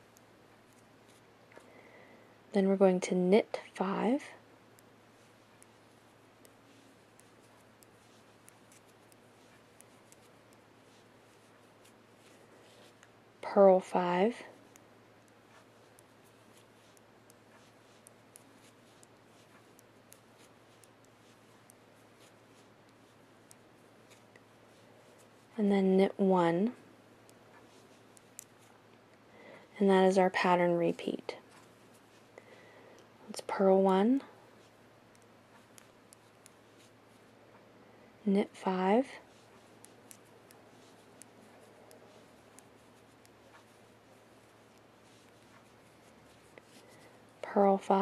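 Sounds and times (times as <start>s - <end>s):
low steady hum: 0.0s - 48.0s
knitting needles clicking: 4.7s - 13.2s, 14.0s - 25.6s, 34.6s - 36.9s, 39.2s - 47.3s.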